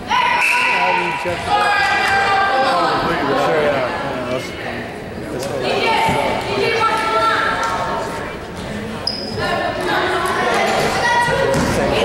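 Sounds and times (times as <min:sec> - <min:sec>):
echoing spectators' voices: 0:00.0 - 0:12.0.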